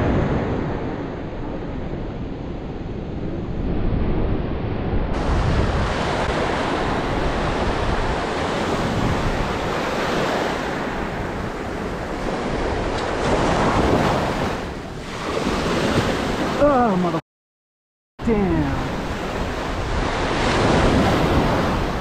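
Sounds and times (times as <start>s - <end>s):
wind buffeting microphone: 0.0s - 16.6s, 18.9s - 22.0s
surf breaking on pebbly beach: 5.2s - 16.6s.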